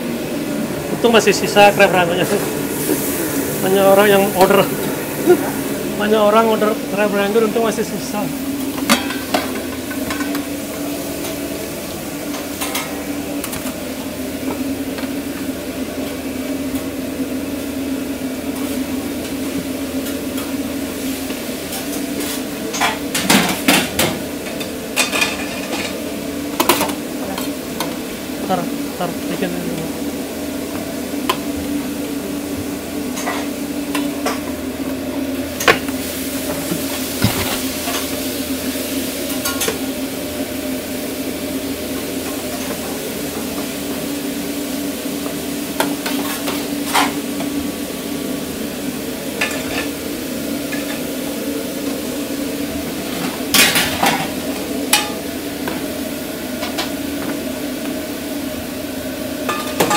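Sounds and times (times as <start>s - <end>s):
food sizzling in a pan: 1.7s - 59.9s
metal utensils clanking on pan: 8.8s - 10.4s, 21.8s - 26.0s.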